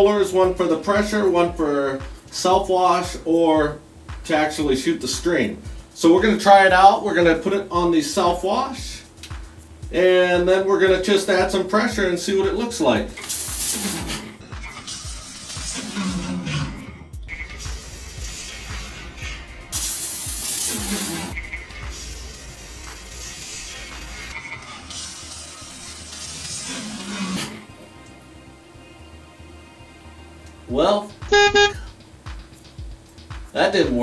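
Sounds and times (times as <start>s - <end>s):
background music: 0.0s - 34.0s
hissing water spray: 13.1s - 14.4s, 17.7s - 24.4s.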